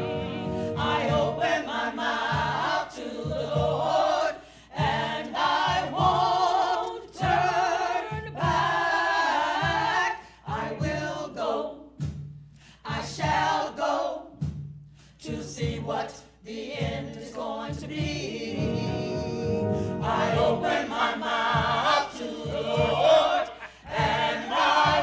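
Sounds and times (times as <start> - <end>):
choir singing gospel: 0.0 - 12.2, 12.8 - 14.6, 15.2 - 25.0.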